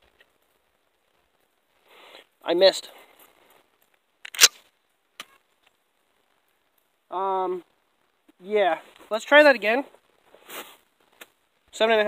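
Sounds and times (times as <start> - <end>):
shotgun action clicks: 4.2 - 4.6
shotgun pump clack: 4.2 - 4.6.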